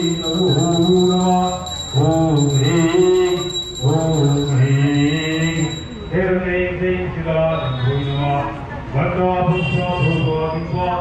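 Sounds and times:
faint steady high tone: 0:00.0 - 0:06.4
man chanting: 0:00.0 - 0:11.0.

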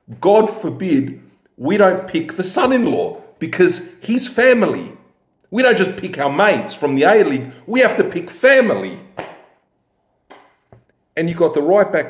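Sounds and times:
man talking: 0:00.0 - 0:09.2, 0:11.2 - 0:12.0.

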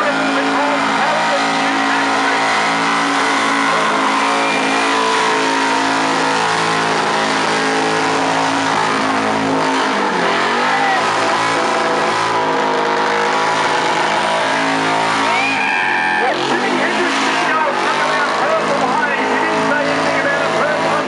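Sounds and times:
engine at high revs: 0:00.0 - 0:21.0
tyres spinning on asphalt: 0:00.0 - 0:21.0.

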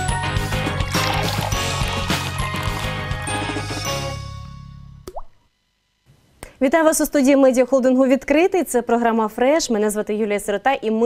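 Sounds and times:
plop sound effect: 0:05.0 - 0:05.4.

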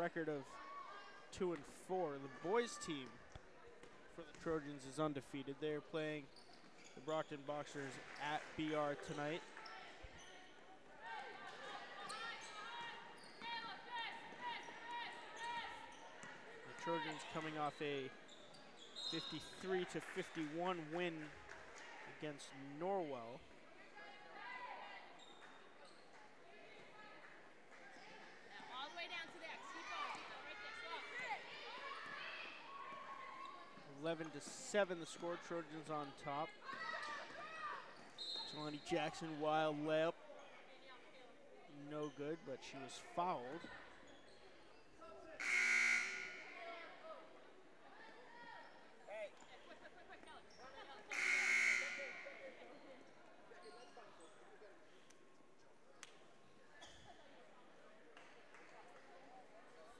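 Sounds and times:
voices echoing in gym: 0:00.0 - 0:59.9
scoreboard horn buzzing: 0:45.4 - 0:46.5, 0:51.1 - 0:52.2.

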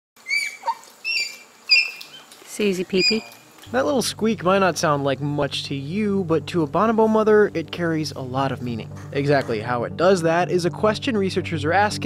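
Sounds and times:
bonobo squeaking calls: 0:00.2 - 0:03.6.

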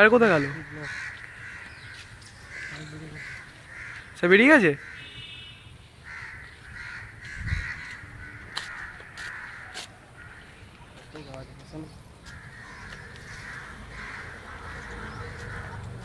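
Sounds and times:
crows cawing: 0:00.0 - 0:11.0, 0:12.2 - 0:16.0.

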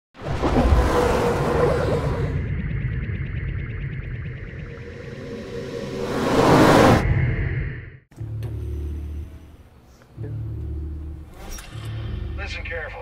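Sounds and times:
loud whoosh: 0:00.2 - 0:08.1
low rumbling drone: 0:00.4 - 0:12.9.

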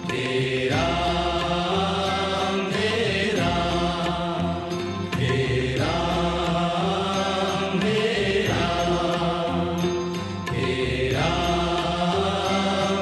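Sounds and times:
musical accompaniment: 0:00.0 - 0:13.0
person singing devotional song: 0:00.0 - 0:13.0.

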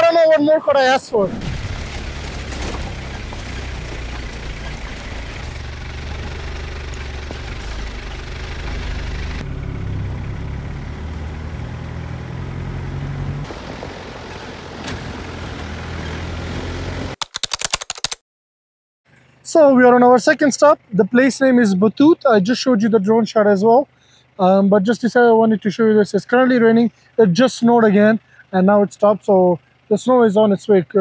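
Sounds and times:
low rumbling noise: 0:01.2 - 0:11.0
keyboard typing clicks: 0:17.2 - 0:18.2.

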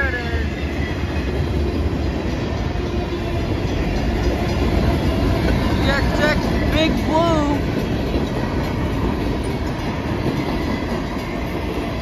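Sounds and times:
freight train rolling past: 0:00.0 - 0:12.0.

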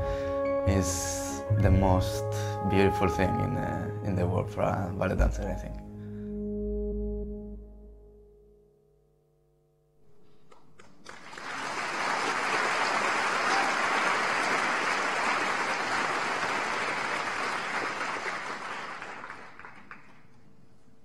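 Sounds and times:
audience applauding: 0:10.8 - 0:20.4.

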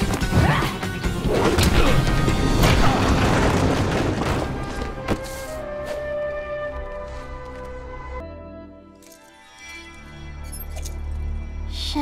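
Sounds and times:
dramatic music score: 0:00.0 - 0:12.0.

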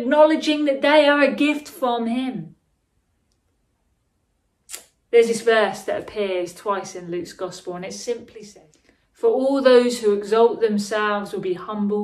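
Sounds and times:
woman speaking: 0:00.0 - 0:02.6, 0:05.1 - 0:12.0.

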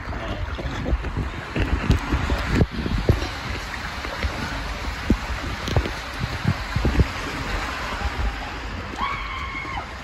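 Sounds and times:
rushing water and air: 0:00.0 - 0:10.0.

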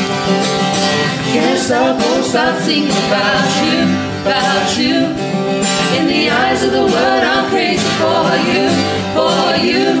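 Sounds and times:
people singing gospel in harmony: 0:01.2 - 0:10.0.

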